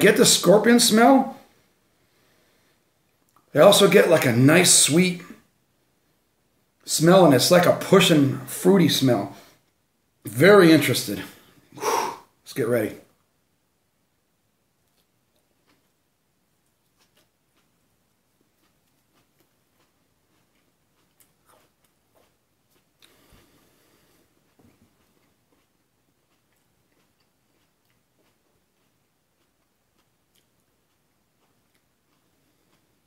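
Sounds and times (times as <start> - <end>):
person chewing: 14.8 - 33.0.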